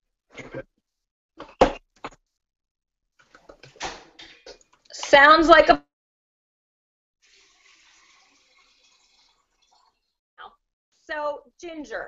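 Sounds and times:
running water from tap: 7.2s - 10.2s.

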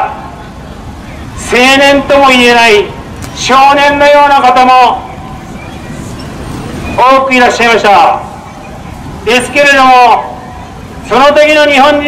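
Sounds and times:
city street traffic rumble: 0.0s - 12.0s.

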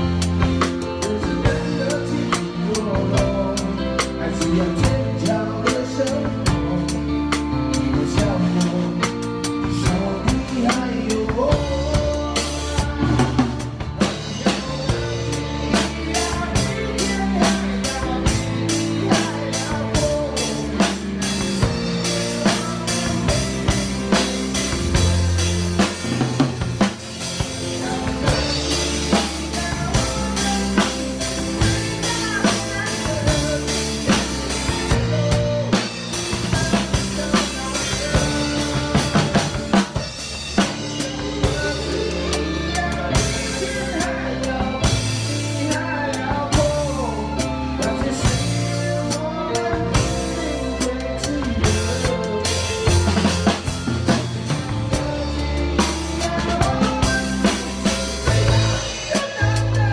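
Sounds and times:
drum kit playing: 0.0s - 59.9s
recorded song: 0.0s - 59.9s.

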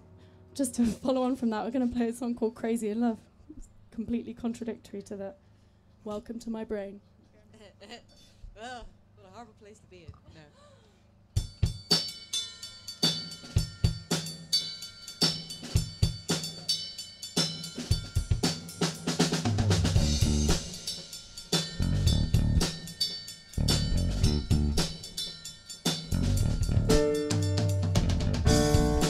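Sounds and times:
drum kit beat: 11.3s - 29.0s
electric bass guitar: 19.6s - 20.6s, 21.8s - 22.7s, 23.6s - 24.9s, 26.1s - 29.0s
live band playing: 26.1s - 29.0s.

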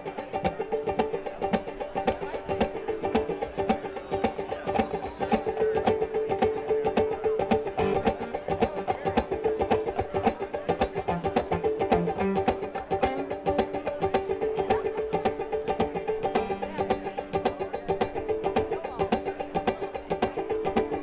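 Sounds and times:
drums: 0.0s - 21.0s
picked banjo: 0.0s - 21.0s
fiddle and accordion notes: 7.8s - 9.2s.

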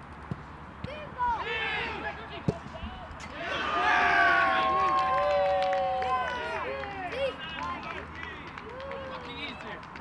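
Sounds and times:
players shouting: 0.8s - 9.5s
football kicked thump: 2.4s - 2.8s.

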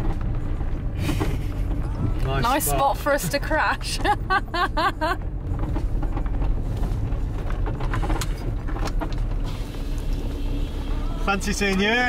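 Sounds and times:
tyres rolling over dirt: 0.0s - 12.0s
van engine running: 0.0s - 12.0s.

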